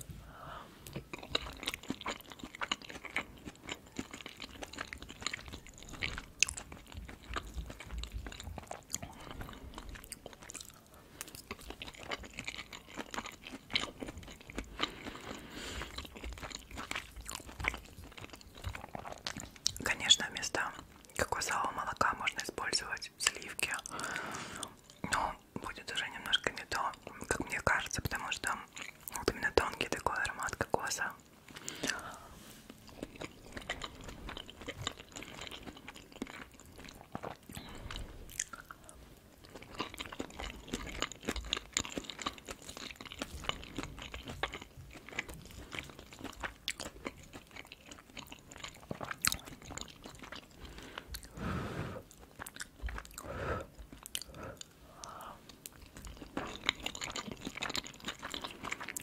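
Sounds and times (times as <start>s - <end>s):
close chewing with wet mouth sounds: 0.8s - 59.0s.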